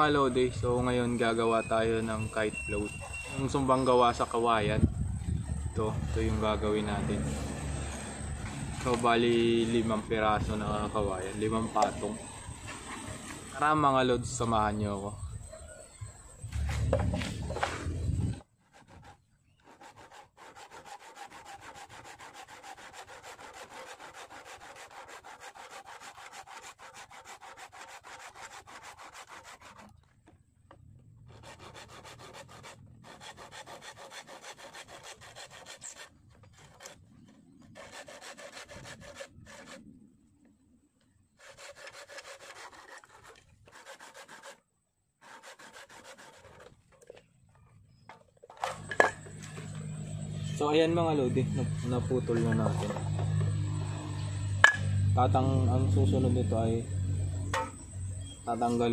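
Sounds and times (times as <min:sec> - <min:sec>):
hand saw cutting bamboo: 0:16.5 - 0:30.1, 0:31.3 - 0:39.8, 0:41.4 - 0:47.2, 0:48.5 - 0:50.4, 0:51.2 - 0:54.9.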